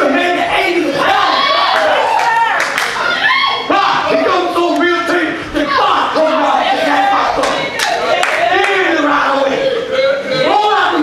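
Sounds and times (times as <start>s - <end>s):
man preaching through microphone: 0.0s - 1.2s, 3.7s - 7.6s, 8.4s - 11.0s.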